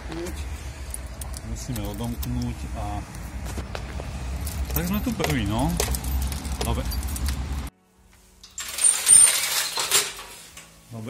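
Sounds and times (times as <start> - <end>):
keys jangling: 4.3 - 7.7.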